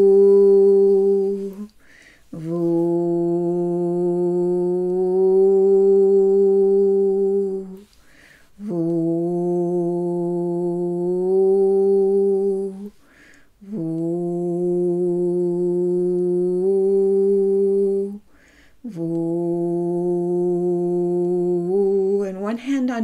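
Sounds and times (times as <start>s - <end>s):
woman humming low tone: 0.0s - 1.7s, 2.3s - 7.9s, 8.6s - 13.0s, 13.6s - 18.2s, 18.8s - 23.0s
in-breath: 1.8s - 2.4s, 7.9s - 8.6s, 12.9s - 13.6s, 18.2s - 18.9s.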